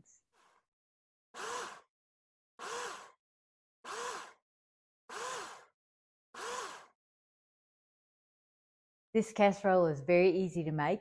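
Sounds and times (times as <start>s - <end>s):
blender pulsing: 1.4s - 1.9s, 2.6s - 3.2s, 3.9s - 4.4s, 5.1s - 5.8s, 6.4s - 7.0s.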